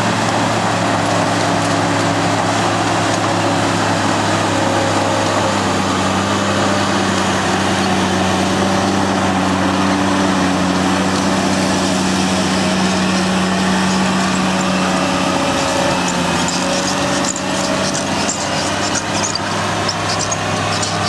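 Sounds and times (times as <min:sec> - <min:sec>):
diesel engine under load: 0:00.0 - 0:21.0
scraper working dirt: 0:00.0 - 0:21.0.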